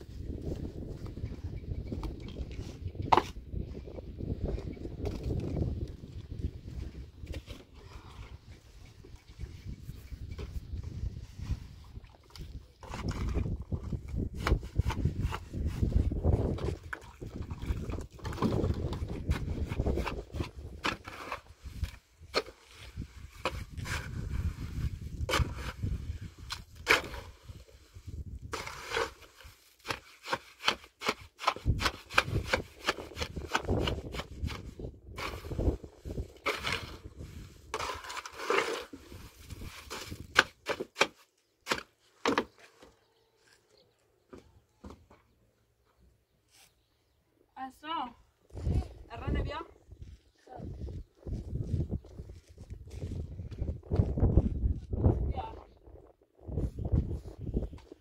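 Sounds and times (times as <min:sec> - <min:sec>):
shovel scraping metal basin: 0:35.2 - 0:35.8, 0:36.4 - 0:41.8.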